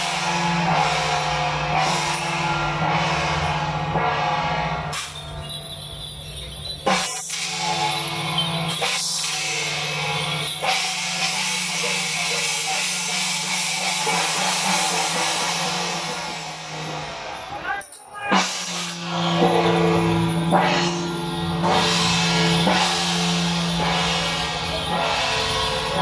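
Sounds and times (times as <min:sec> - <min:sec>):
clashing cymbals: 0:00.0 - 0:26.0
drums: 0:00.0 - 0:26.0.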